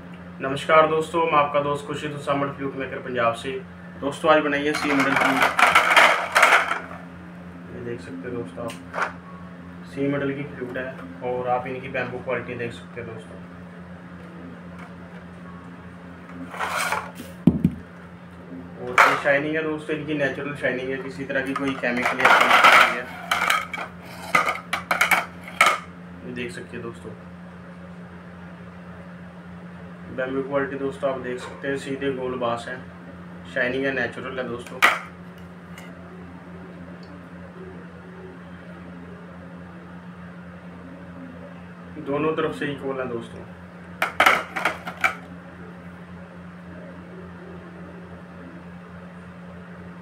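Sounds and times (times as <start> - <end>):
appliance or fan humming: 0.0 - 50.0.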